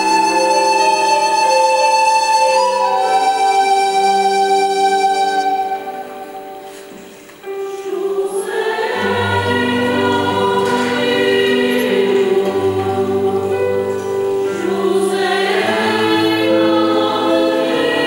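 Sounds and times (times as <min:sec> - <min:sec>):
keyboard: 0:00.0 - 0:18.0
mixed choir singing: 0:05.4 - 0:18.0.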